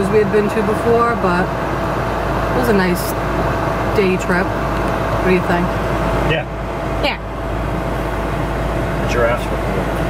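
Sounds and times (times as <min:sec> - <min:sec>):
car cabin rumble while driving: 0:00.0 - 0:10.0.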